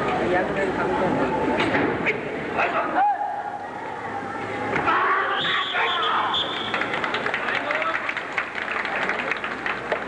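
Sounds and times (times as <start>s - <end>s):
crowd background noise: 0.0s - 10.0s
crowd shouting: 4.8s - 6.7s
sharp claps and clicks: 6.5s - 10.0s.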